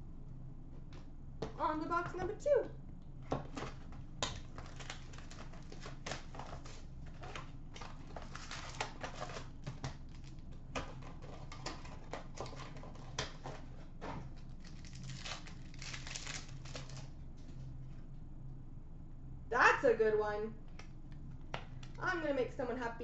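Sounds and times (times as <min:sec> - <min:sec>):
wrapper crinkling: 0:03.5 - 0:10.4, 0:14.6 - 0:17.1.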